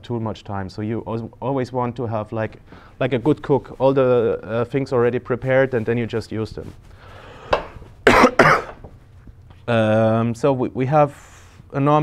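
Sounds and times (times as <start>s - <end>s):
man coughing: 8.0s - 8.9s.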